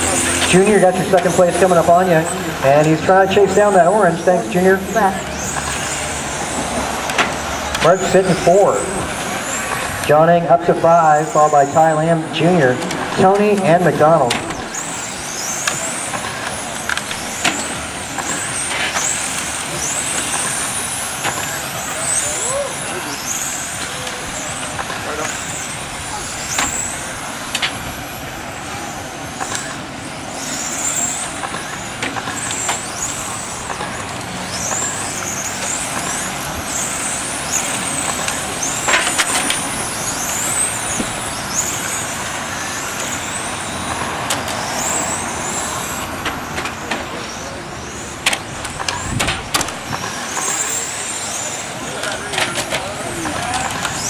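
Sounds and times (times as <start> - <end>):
rc car motors whining: 0.0 - 54.0.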